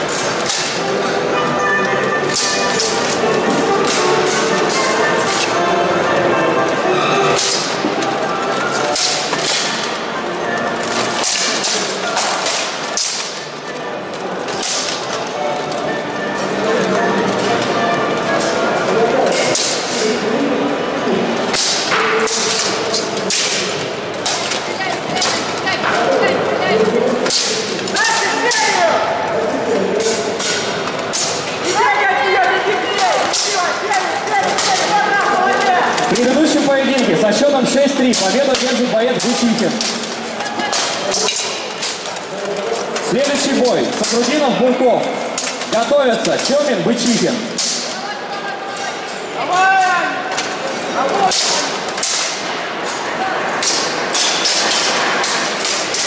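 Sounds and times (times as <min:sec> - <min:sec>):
voices in large hall: 0:00.0 - 0:56.0.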